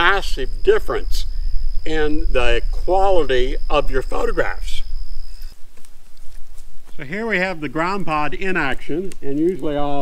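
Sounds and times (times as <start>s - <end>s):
high insect trill: 0.0s - 10.0s
steady low rumble: 0.0s - 10.0s
faint rustles: 4.6s - 7.6s.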